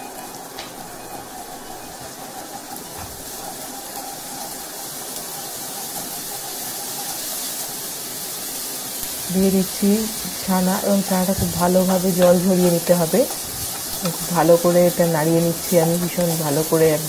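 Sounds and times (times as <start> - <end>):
paste sizzling in oil: 0.0 - 17.0
wooden spatula stirring: 10.1 - 17.0.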